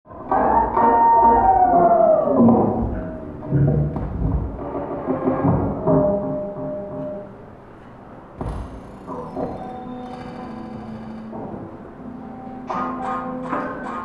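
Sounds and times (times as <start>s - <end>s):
low drum-like thuds: 2.4s - 6.8s, 8.4s - 9.8s.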